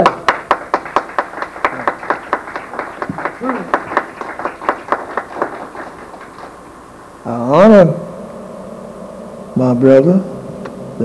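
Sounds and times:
scattered handclaps: 0:00.0 - 0:06.6.

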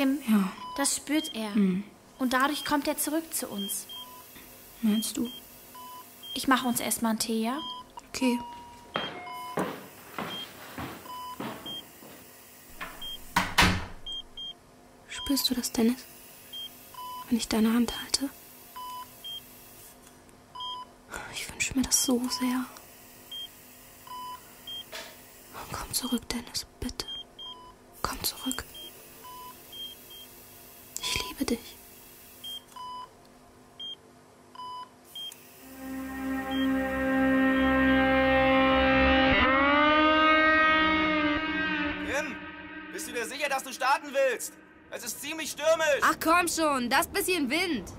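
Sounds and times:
patient monitor beeping: 0:00.5 - 0:01.5, 0:02.2 - 0:06.7, 0:07.5 - 0:12.1, 0:12.8 - 0:13.5, 0:14.1 - 0:14.6, 0:16.5 - 0:17.3, 0:23.3 - 0:24.9, 0:27.0 - 0:27.8, 0:28.4 - 0:30.3, 0:34.6 - 0:43.9
lower monitor tone: 0:35.6 - 0:45.3
music: 0:35.7 - 0:39.8.

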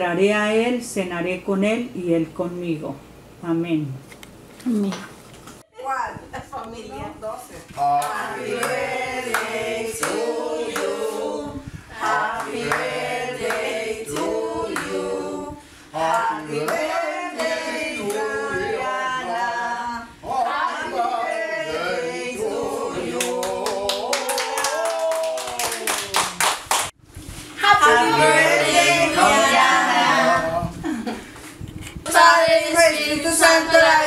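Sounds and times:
group singing unaccompanied: 0:07.8 - 0:24.4, 0:27.6 - 0:30.7, 0:32.1 - 0:34.0
people clapping: 0:08.0 - 0:10.2, 0:12.4 - 0:13.7, 0:23.2 - 0:27.0.

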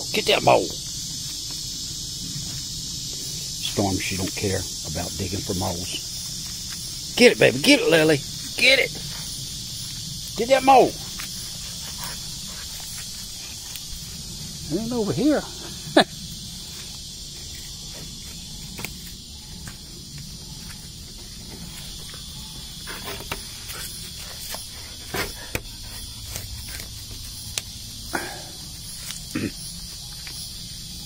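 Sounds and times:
high insect drone: 0:00.0 - 0:31.0
dog sniffing: 0:10.9 - 0:14.6.

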